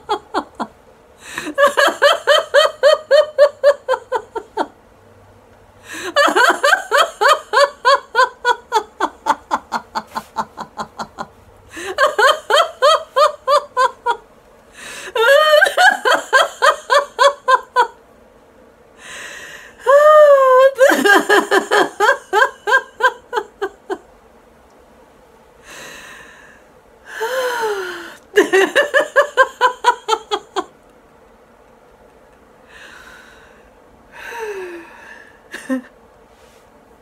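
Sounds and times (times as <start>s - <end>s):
woman laughing heartily: 0.0s - 4.8s, 5.8s - 14.2s, 14.8s - 18.0s, 19.8s - 24.0s, 27.2s - 30.8s, 35.5s - 36.0s.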